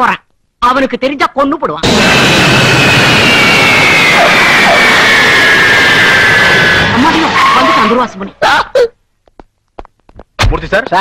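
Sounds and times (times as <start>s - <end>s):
jet engines roaring with whine: 1.8s - 8.4s.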